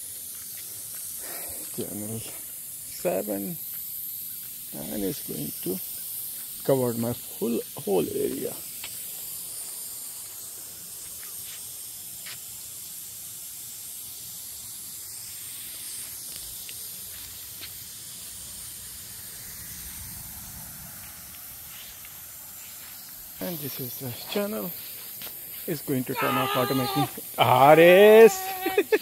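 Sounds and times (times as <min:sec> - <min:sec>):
lawn sprinkler spraying water: 0:00.0 - 0:29.0.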